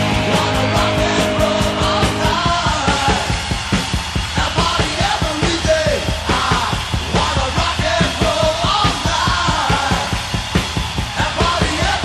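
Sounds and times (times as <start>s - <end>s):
near-shouted sung vocals: 0.0s - 3.5s, 4.2s - 12.0s
rock song with driving drums: 0.0s - 12.0s.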